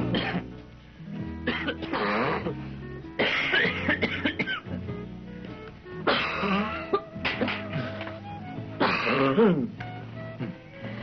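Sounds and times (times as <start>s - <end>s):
background music with held notes: 0.0s - 11.0s
adults coughing: 0.1s - 0.5s, 1.4s - 2.5s, 3.2s - 4.8s, 6.0s - 8.0s, 8.8s - 9.7s.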